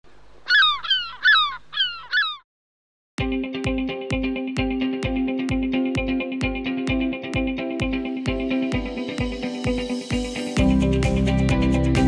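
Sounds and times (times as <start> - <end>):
gull squawking: 0.4 - 2.4.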